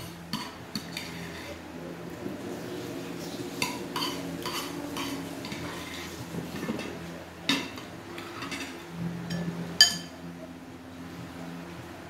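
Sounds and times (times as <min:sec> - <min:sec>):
spoon clinking on ceramic bowl: 0:09.3 - 0:10.1.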